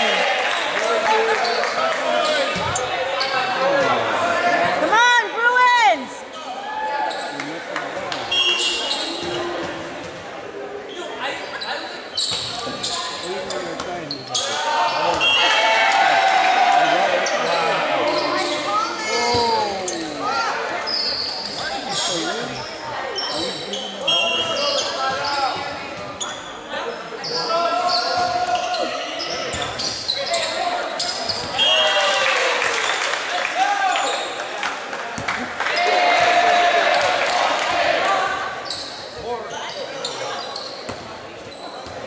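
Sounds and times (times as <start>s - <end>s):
people calling and shouting: 1.2s - 32.2s
sneakers squeaking on court: 8.2s - 10.2s, 10.9s - 15.5s, 17.2s - 31.7s, 38.5s - 42.0s.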